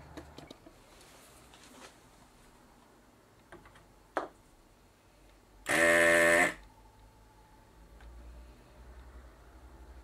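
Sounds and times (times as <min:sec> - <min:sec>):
desoldering gun pump buzzing: 0:05.7 - 0:06.6.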